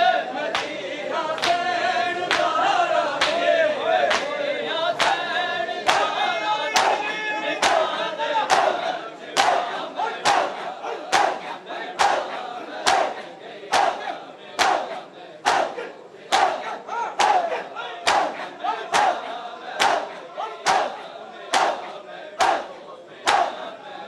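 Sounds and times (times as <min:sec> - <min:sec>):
crowd shouting together: 0:00.0 - 0:24.0
crowd slapping chests in unison: 0:00.0 - 0:24.0.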